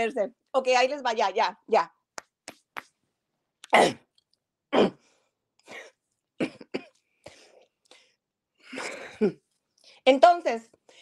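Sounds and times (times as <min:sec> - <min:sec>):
person coughing: 0:03.7 - 0:04.1, 0:05.7 - 0:07.0.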